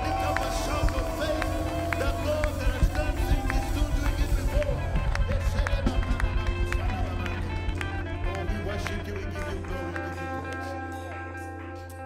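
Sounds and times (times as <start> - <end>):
voices singing along: 0.0 - 11.1
live worship band music: 0.0 - 12.0.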